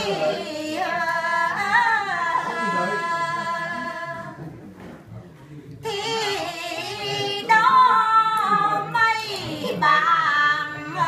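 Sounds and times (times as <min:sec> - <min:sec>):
women singing unaccompanied: 0:00.0 - 0:04.4, 0:05.8 - 0:11.0.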